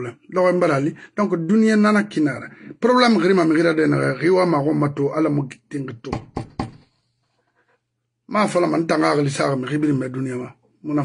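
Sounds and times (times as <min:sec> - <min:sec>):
sharp knocks: 0:06.1 - 0:06.9.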